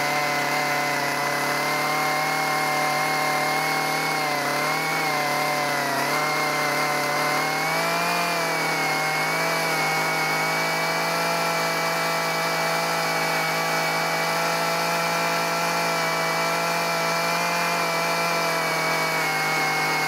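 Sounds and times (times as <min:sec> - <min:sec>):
small chainsaw cutting wood: 0:00.0 - 0:20.0.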